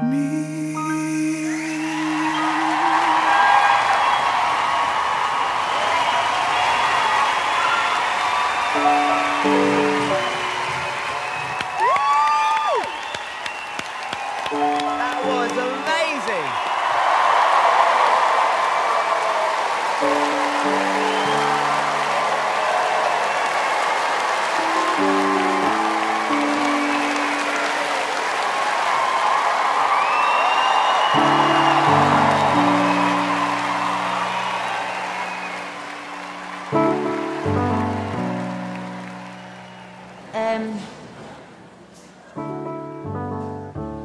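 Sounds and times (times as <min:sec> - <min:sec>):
audience applauding and cheering: 0:01.4 - 0:40.8.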